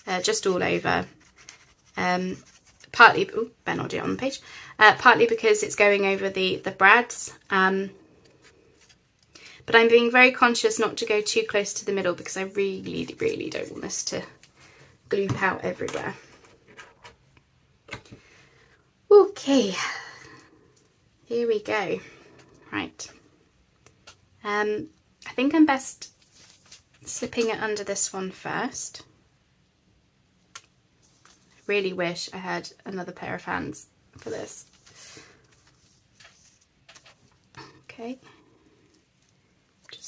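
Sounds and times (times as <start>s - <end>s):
paper rustling: 1.0s - 3.0s, 26.1s - 27.5s, 30.6s - 31.8s, 34.2s - 37.6s.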